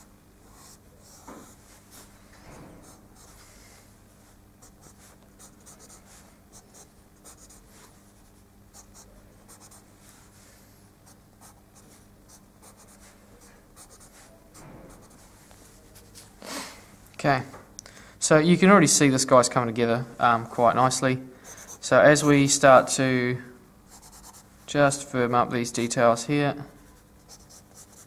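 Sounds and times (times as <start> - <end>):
pencil sketching on paper: 27.3 - 28.0.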